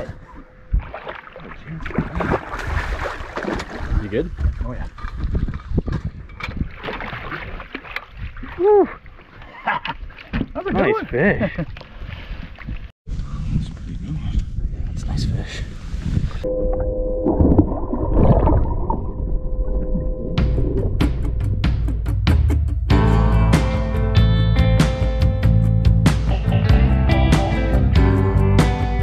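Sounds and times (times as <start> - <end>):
fish thrashing in water: 0.8 - 10.5
wind rumbling on microphone: 2.2 - 8.8, 11.5 - 21.9
low underwater rumble: 16.4 - 23.0.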